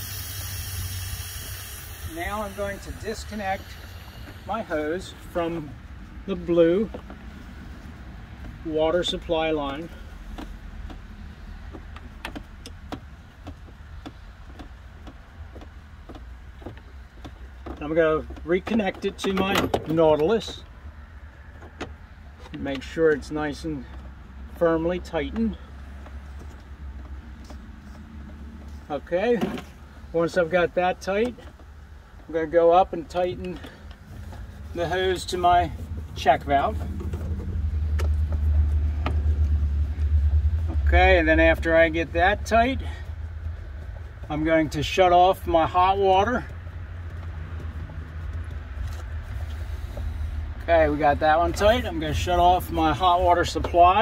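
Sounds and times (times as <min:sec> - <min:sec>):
steady low hum: 0:00.0 - 0:21.4
steady low rumble: 0:00.0 - 0:54.0.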